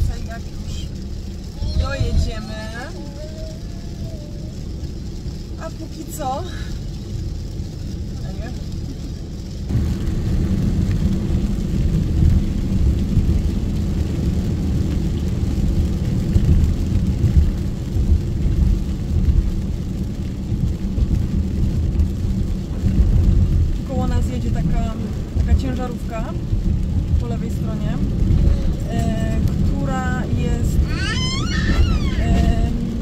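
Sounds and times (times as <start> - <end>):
car road rumble on wet road: 0.0 - 33.0.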